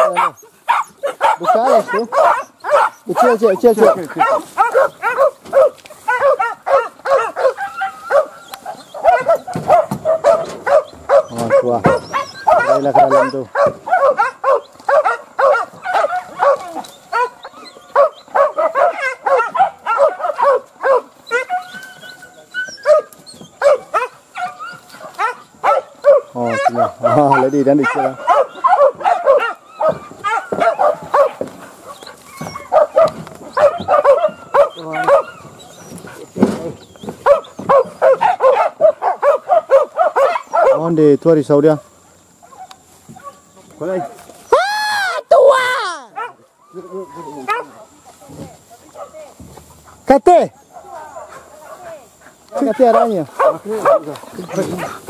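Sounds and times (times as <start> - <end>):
long low dog calls: 0.0 - 40.9, 44.4 - 47.8
dogs barking and yelping: 0.0 - 48.0, 49.8 - 55.0.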